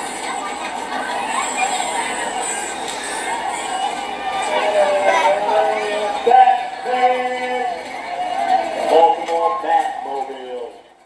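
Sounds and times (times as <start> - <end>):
voices holding bending notes: 0.0 - 10.9.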